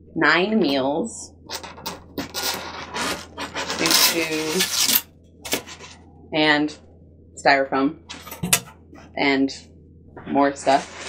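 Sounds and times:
foam scraping against cardboard: 0:02.2 - 0:06.0, 0:10.6 - 0:11.0.

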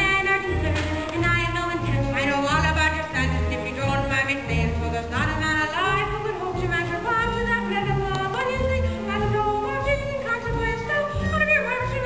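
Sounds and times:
instrumental accompaniment: 0:00.0 - 0:12.0
women singing with vibrato: 0:00.0 - 0:12.0.

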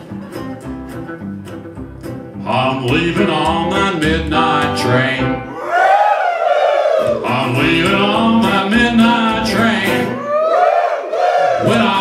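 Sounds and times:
acoustic guitar: 0:00.0 - 0:05.6, 0:07.0 - 0:10.4, 0:11.5 - 0:12.0
electric guitar: 0:00.0 - 0:05.6
upright bass: 0:00.0 - 0:05.6, 0:07.2 - 0:10.2, 0:11.6 - 0:12.0.

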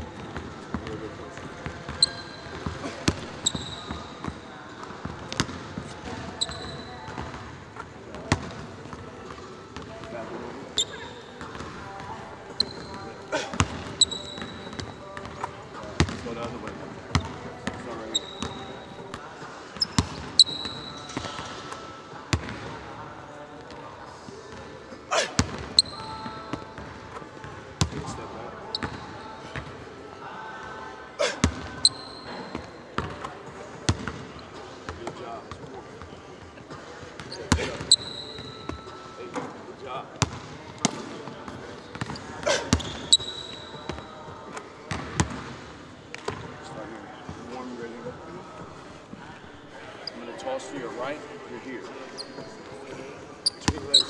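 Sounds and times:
sneaker squeaks: 0:00.0 - 0:16.2, 0:17.1 - 0:22.0, 0:25.1 - 0:27.2, 0:27.8 - 0:29.7, 0:31.2 - 0:33.3, 0:36.4 - 0:39.6, 0:41.8 - 0:45.4, 0:52.0 - 0:52.7, 0:53.4 - 0:54.0.

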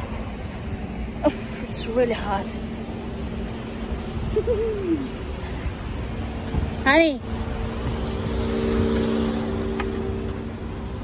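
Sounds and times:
vehicle engine humming: 0:00.0 - 0:11.0
wind rumble on microphone: 0:00.0 - 0:11.0.

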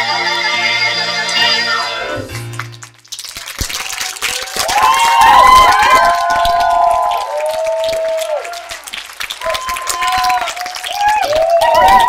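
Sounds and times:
audience clapping: 0:02.3 - 0:12.0
cheering and whooping: 0:03.8 - 0:12.0.

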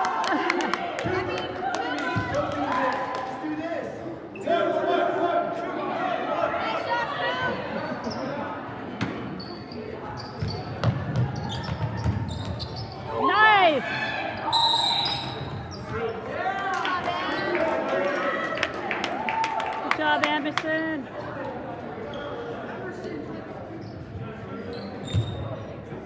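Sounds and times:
spectators' voices: 0:00.0 - 0:26.0.

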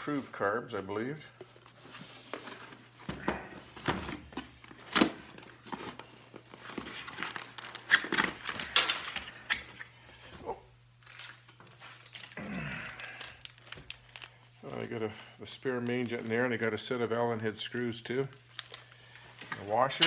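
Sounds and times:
plastic packaging crinkling: 0:04.6 - 0:09.8, 0:11.0 - 0:17.2, 0:18.1 - 0:20.0.

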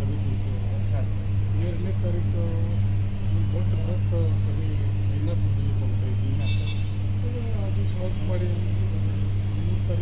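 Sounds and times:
man speaking: 0:00.0 - 0:10.0
steady low hum: 0:00.0 - 0:10.0.

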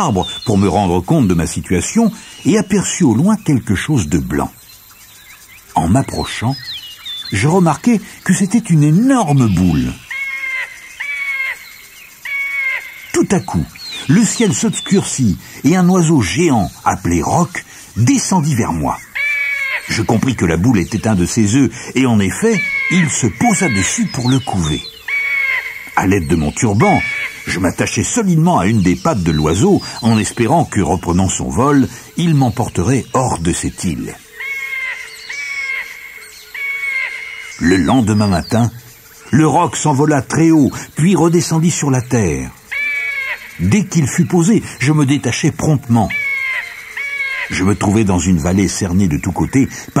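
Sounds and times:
drawn-out bird calls: 0:00.0 - 0:50.0
crow-like caws: 0:10.0 - 0:13.1, 0:19.0 - 0:20.0, 0:22.4 - 0:23.9, 0:24.8 - 0:26.0, 0:26.8 - 0:27.5, 0:34.2 - 0:37.9, 0:42.6 - 0:43.7, 0:46.1 - 0:47.7.

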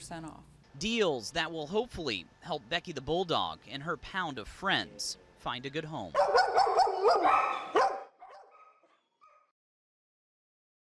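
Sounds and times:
dogs barking and yipping: 0:06.2 - 0:09.5.

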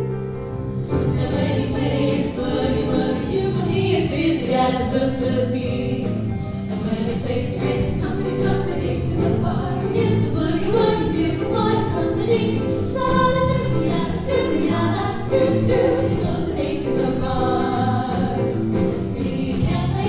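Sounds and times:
live swing band: 0:00.0 - 0:20.0
women singing in close harmony: 0:01.0 - 0:20.0.

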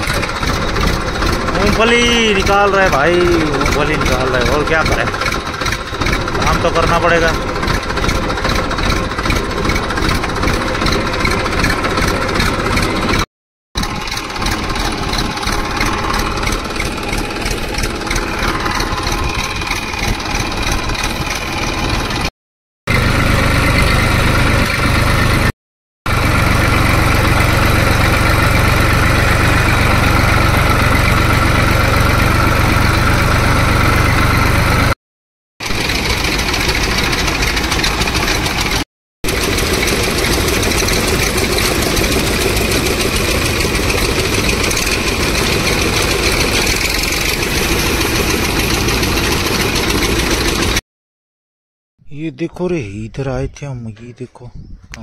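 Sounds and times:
farm machinery engine running: 0:00.0 - 0:22.3, 0:22.9 - 0:25.5, 0:26.1 - 0:35.0, 0:35.6 - 0:50.8.

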